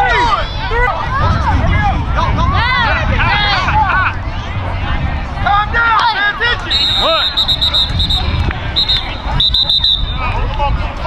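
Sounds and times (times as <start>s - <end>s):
players and spectators calling out: 0.0s - 11.0s.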